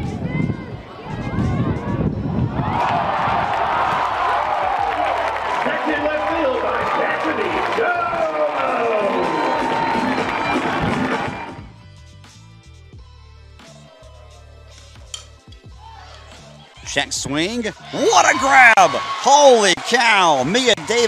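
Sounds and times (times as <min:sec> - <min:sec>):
stadium crowd cheering and yelling: 0:00.0 - 0:11.7, 0:15.7 - 0:21.0.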